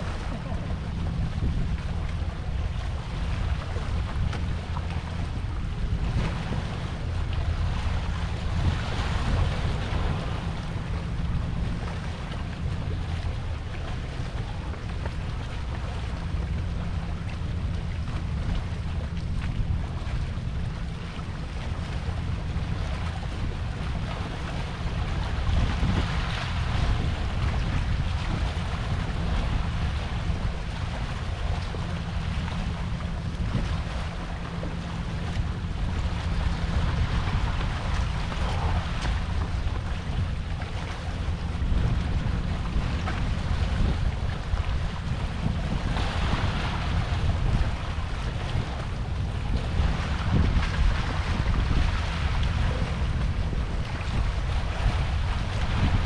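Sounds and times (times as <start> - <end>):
sea water washing against rocks: 0.0 - 56.0
wind buffeting microphone: 0.0 - 56.0.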